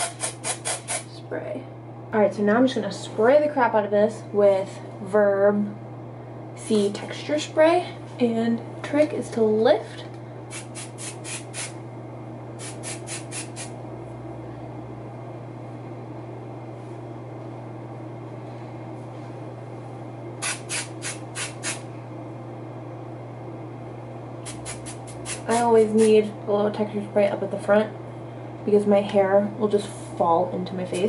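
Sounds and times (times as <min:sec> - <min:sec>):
aerosol spray bursts: 0:00.0 - 0:01.1, 0:10.5 - 0:11.8, 0:12.6 - 0:13.7, 0:20.4 - 0:21.8, 0:24.4 - 0:25.6
steady low hum: 0:00.0 - 0:31.0.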